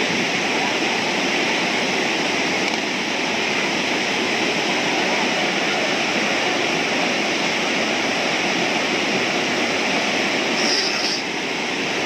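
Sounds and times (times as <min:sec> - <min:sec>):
river rapids rushing over rocks: 0:00.0 - 0:12.0.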